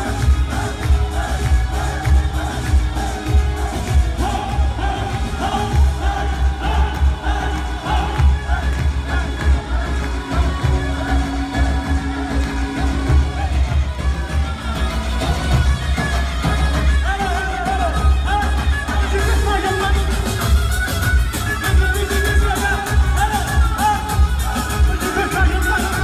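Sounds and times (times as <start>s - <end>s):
live band playing dance music: 0.0s - 26.0s.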